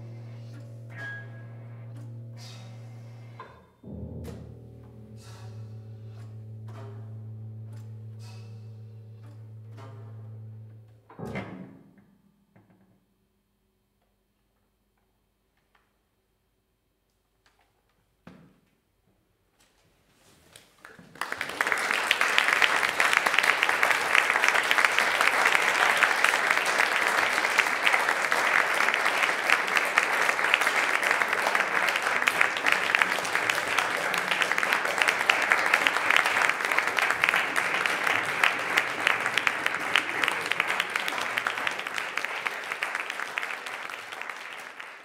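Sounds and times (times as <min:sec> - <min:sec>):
audience applauding: 0:20.8 - 0:45.0.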